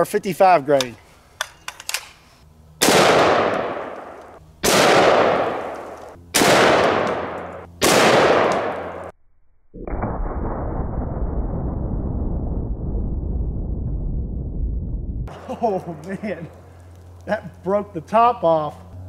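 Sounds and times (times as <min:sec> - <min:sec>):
rifle shots echoing: 0:02.8 - 0:09.1
muffled low noise: 0:09.2 - 0:16.6.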